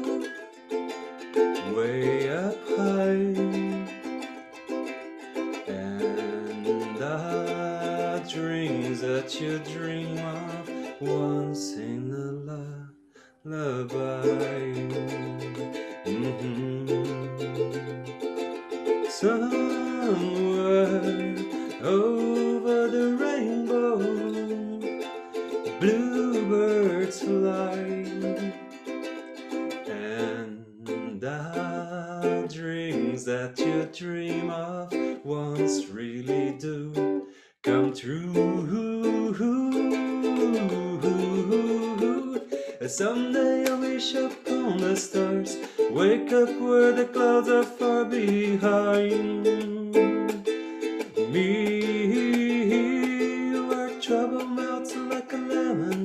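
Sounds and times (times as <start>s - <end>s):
ukulele strumming chords: 0.0s - 12.8s, 13.5s - 56.0s
man singing: 0.0s - 56.0s.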